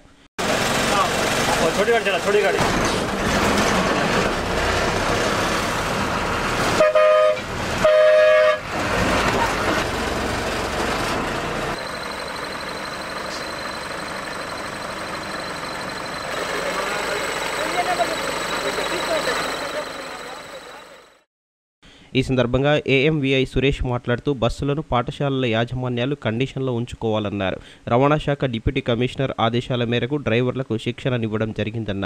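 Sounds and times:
bus engine running: 0:00.4 - 0:21.3
bus horn blasts: 0:06.7 - 0:08.8.

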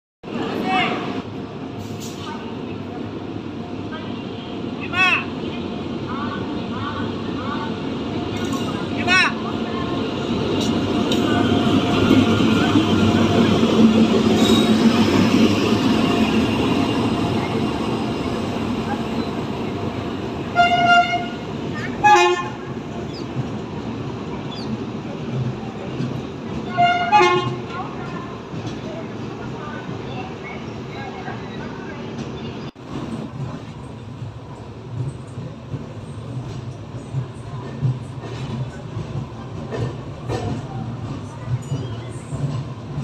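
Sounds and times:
train wheels rolling: 0:07.5 - 0:43.0
train horn toots: 0:20.5 - 0:21.4, 0:22.0 - 0:22.6, 0:26.7 - 0:27.6.

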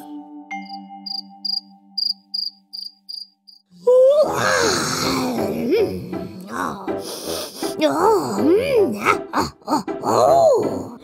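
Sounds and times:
crickets chirping: 0:01.1 - 0:03.6
rising voice-like moan: 0:03.7 - 0:07.0, 0:07.8 - 0:11.0.

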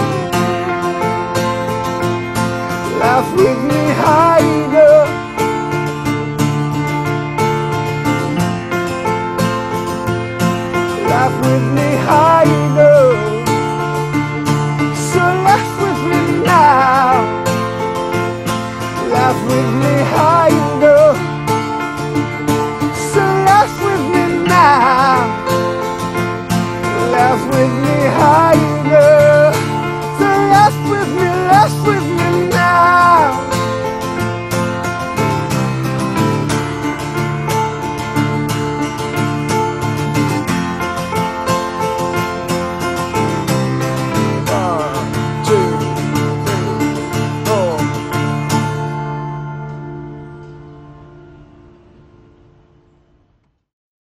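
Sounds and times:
guitar and keyboard instrumental: 0:00.0 - 0:53.5.

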